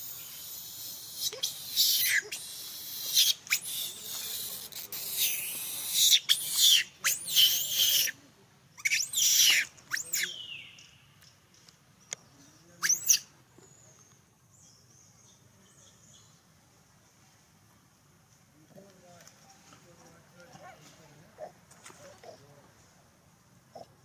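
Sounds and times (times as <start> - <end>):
hissing rustle: 0.0 - 8.1
monkeys squealing: 0.1 - 8.2, 8.8 - 10.3, 12.8 - 13.2.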